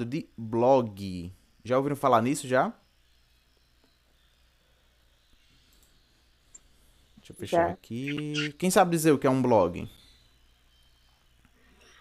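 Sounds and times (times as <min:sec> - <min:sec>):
computer mouse clicks: 0:05.7 - 0:06.7.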